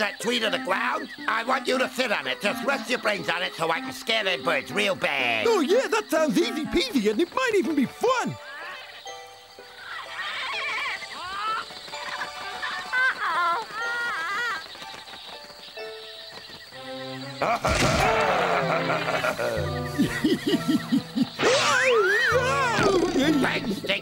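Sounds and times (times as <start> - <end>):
cartoon background music: 0.0 - 24.0
falling cries: 9.7 - 14.7, 17.3 - 23.4.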